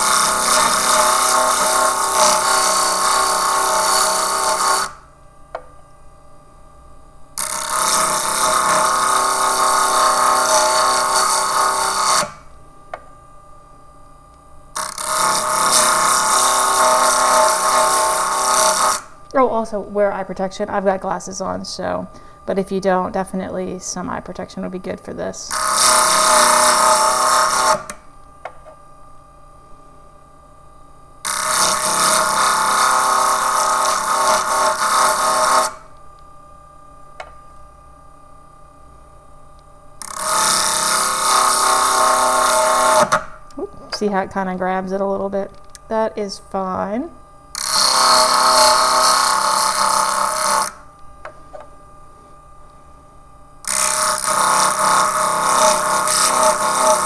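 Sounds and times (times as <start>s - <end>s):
grinder disc grinding glass: 0.0s - 5.1s, 7.4s - 12.4s, 14.8s - 19.2s, 25.5s - 28.0s, 31.2s - 35.9s, 40.0s - 43.2s, 47.6s - 50.8s, 53.6s - 57.0s.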